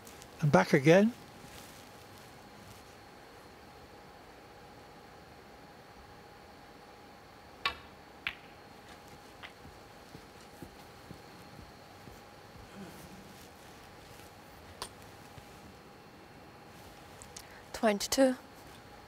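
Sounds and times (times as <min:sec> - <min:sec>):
low steady hum: 0:00.0 - 0:19.0
snooker balls clicking: 0:07.6 - 0:10.2
balls knocking faintly: 0:07.6 - 0:13.3.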